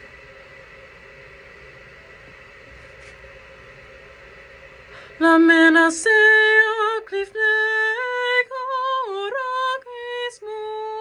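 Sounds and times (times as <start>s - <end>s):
constant hiss: 0.0s - 11.0s
faint hum: 0.0s - 11.0s.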